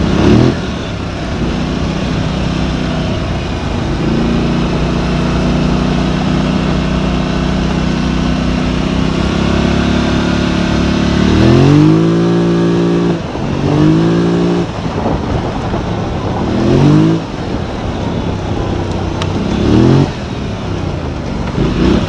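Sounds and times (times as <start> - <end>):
engine revving: 0.0 - 22.0
wind rushing: 11.4 - 20.3.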